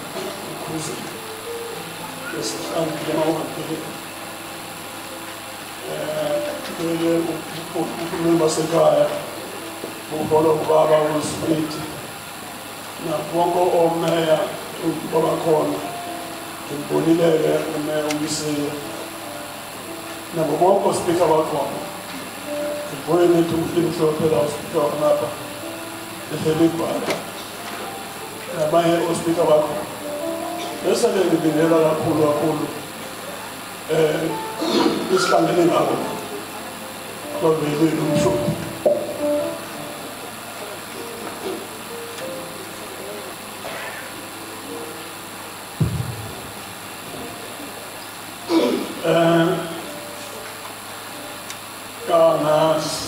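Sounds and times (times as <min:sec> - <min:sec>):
person speaking: 0:00.0 - 0:04.2, 0:20.2 - 0:25.5, 0:26.2 - 0:45.1
quiet instrumental music: 0:00.0 - 0:53.0
faint voices: 0:26.3 - 0:45.4
thump: 0:45.8 - 0:46.4.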